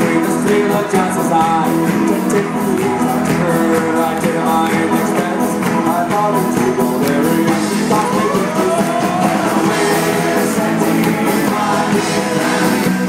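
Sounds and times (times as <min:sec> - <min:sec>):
acoustic guitar: 0:00.0 - 0:13.0
banjo: 0:00.0 - 0:13.0
drums: 0:00.0 - 0:13.0.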